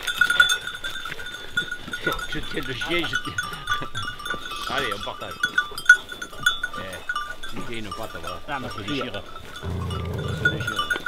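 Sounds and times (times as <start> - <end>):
dog growling: 9.6 - 10.9.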